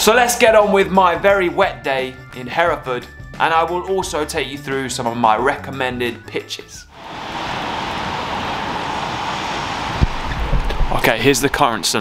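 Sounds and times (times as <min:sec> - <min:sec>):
rain on wet pavement: 0:07.0 - 0:10.9.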